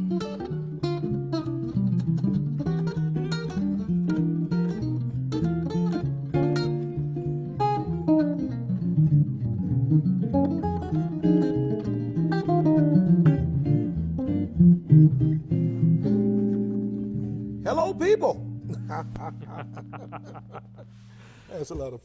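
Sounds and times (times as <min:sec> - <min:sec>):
two jazz guitars playing: 0:00.0 - 0:21.5.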